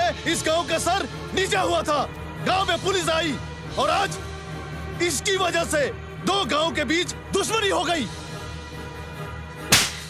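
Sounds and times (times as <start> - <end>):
sharp slap: 9.7 - 10.0.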